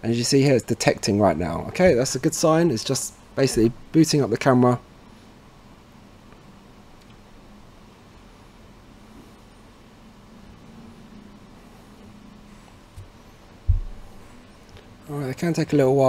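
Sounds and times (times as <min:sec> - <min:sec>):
faint low hum: 0:00.0 - 0:16.0
dull low thump: 0:13.0 - 0:14.3.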